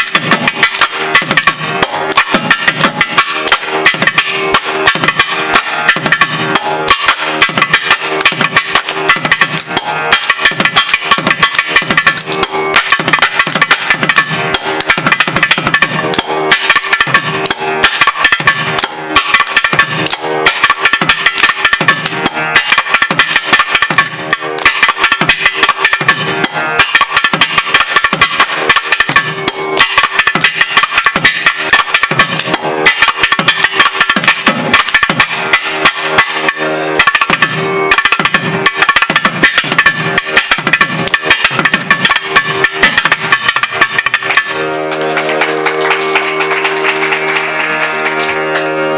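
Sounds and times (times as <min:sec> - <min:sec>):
steady drone: 0:27.9 - 0:48.9.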